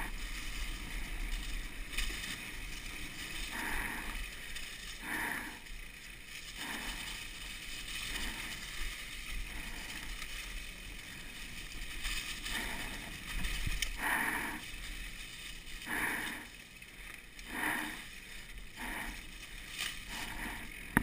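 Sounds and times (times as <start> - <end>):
bike tyres rolling over dry leaves: 0.0 - 21.0.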